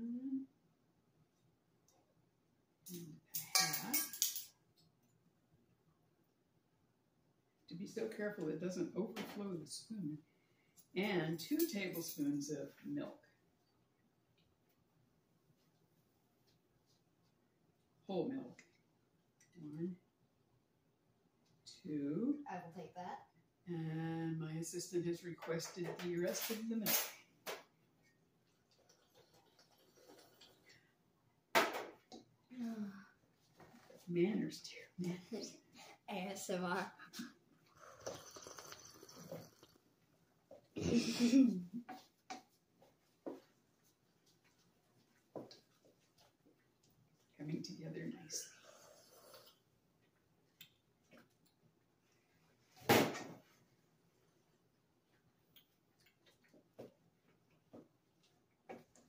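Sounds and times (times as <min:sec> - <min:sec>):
child slurping milk: 0:29.0 - 0:30.7, 0:37.7 - 0:39.8, 0:48.5 - 0:49.6.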